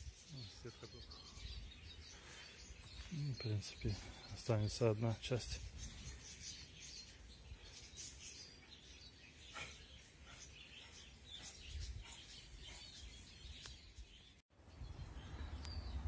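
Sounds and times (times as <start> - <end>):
distant birds chirping: 0.0 - 16.0.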